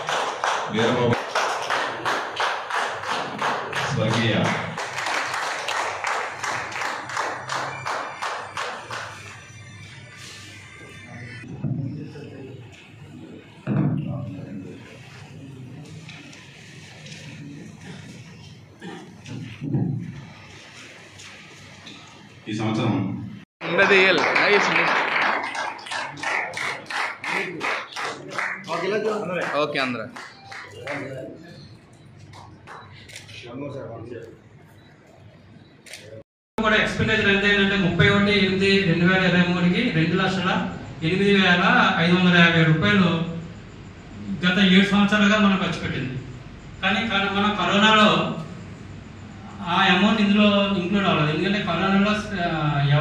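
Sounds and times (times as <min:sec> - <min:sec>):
audience clapping in rhythm: 0:00.0 - 0:09.7, 0:23.6 - 0:31.4, 0:32.2 - 0:33.1.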